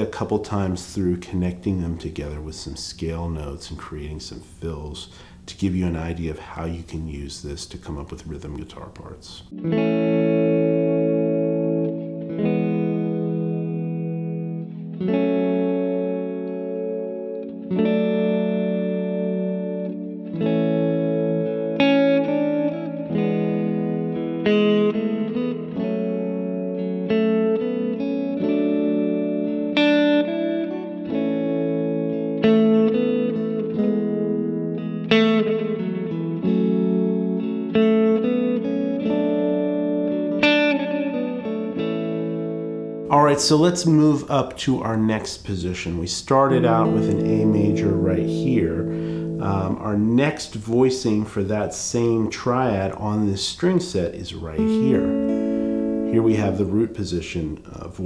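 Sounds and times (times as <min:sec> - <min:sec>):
electric guitar single-note fills: 0:09.4 - 0:44.0, 0:46.4 - 0:50.3, 0:54.2 - 0:58.0
electric guitar chords: 0:09.4 - 0:45.2, 0:45.8 - 0:58.0.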